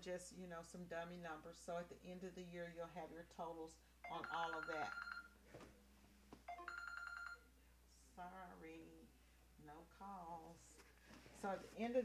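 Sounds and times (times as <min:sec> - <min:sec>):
telephone ringing: 0:04.0 - 0:05.4, 0:06.5 - 0:07.5.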